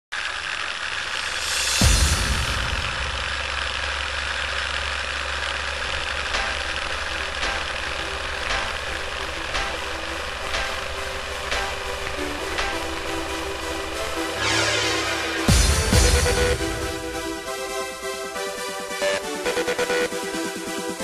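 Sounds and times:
film projector running: 0:00.1 - 0:14.4
low hum: 0:00.2 - 0:18.2.

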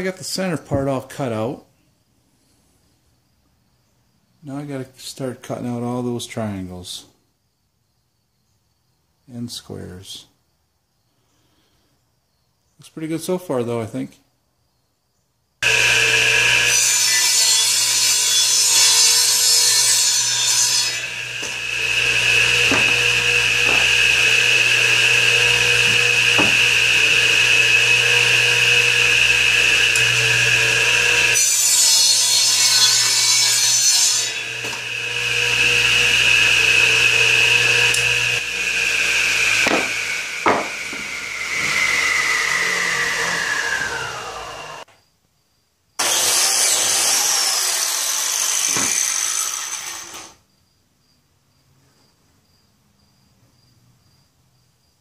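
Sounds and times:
saw motor whine: 0:15.6 - 0:44.8
saw blade cutting wood: 0:15.6 - 0:44.9, 0:46.0 - 0:50.4
saw winding down: 0:15.6 - 0:44.9, 0:46.0 - 0:50.4
wood knocking on table: 0:22.7 - 0:23.0, 0:23.6 - 0:23.9, 0:26.4 - 0:26.6, 0:39.6 - 0:41.0.

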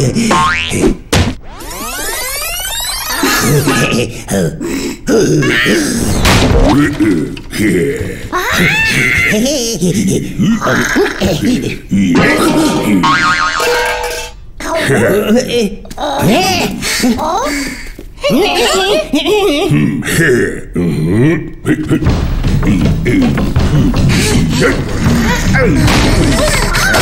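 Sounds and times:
cartoon spring boing: 0:13.0 - 0:14.2
music: 0:21.8 - 0:27.0.

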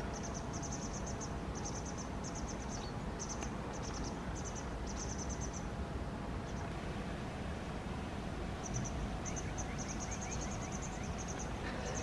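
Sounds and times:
cricket chirping: 0:00.0 - 0:05.7, 0:08.6 - 0:12.0
low outdoor rumble: 0:00.0 - 0:12.0.

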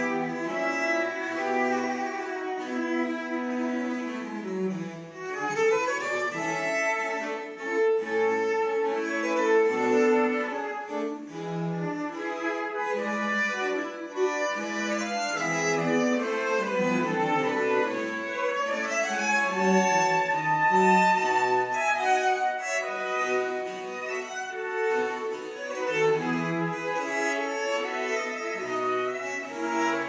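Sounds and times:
cello bowing: 0:00.0 - 0:30.0
violins bowing: 0:00.0 - 0:30.0
flute: 0:08.3 - 0:30.0.

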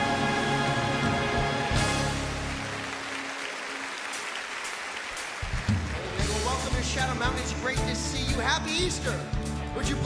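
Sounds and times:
congregation applauding: 0:00.2 - 0:07.6
band playing bass and drums: 0:05.2 - 0:10.0.

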